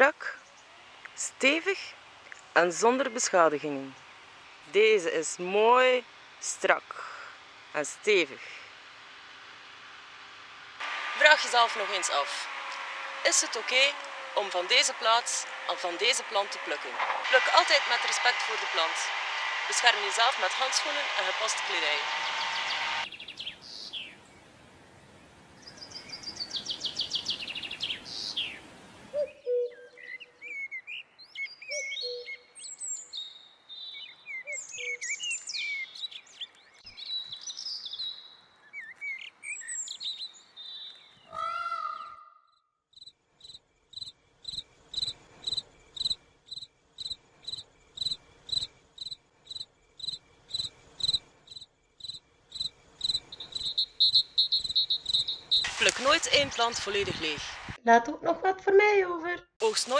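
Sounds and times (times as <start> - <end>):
pulsing insect call: 10.8 - 23.4, 43.0 - 56.4
birds chirping: 10.8 - 57.7.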